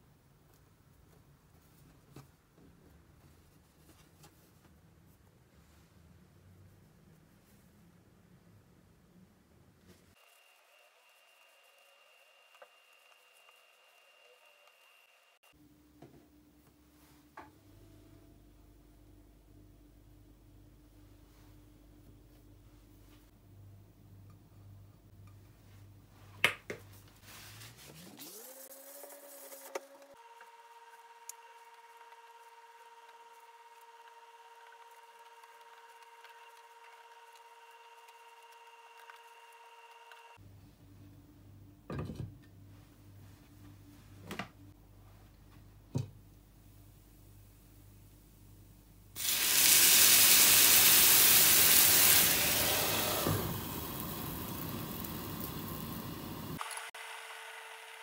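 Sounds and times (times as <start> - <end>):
water hissing in hot pan: 49.2 - 56.6
induction hob humming: 49.2 - 58.0.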